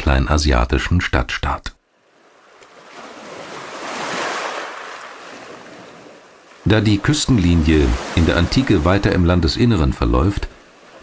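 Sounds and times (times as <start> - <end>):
wave rushing in: 7.4 - 9.0.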